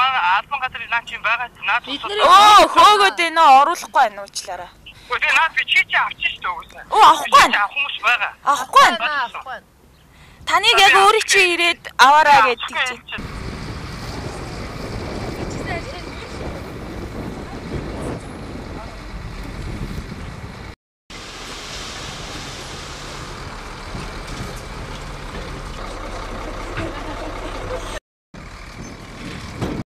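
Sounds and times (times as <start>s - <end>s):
diesel truck engine running: 10.5s - 29.8s
soil sliding out: 21.2s - 26.0s.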